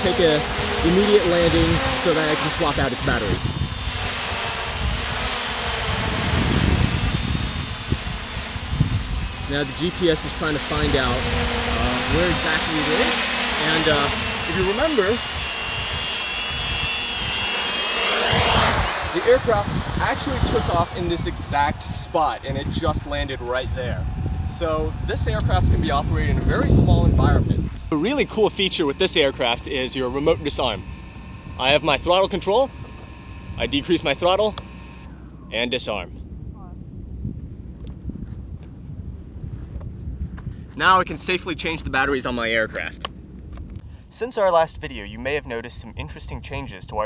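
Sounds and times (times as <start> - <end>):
drone motors whining: 0.0 - 35.1
air rumble on microphone: 19.2 - 28.5.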